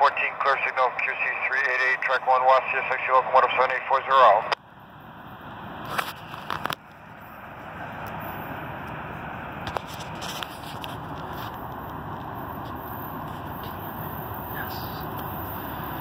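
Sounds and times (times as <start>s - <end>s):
diesel freight train rumble: 0.0s - 16.0s.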